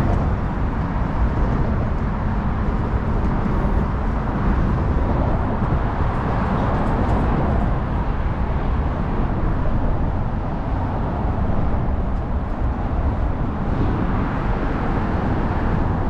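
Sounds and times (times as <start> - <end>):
steady traffic rumble: 0.0 - 16.0.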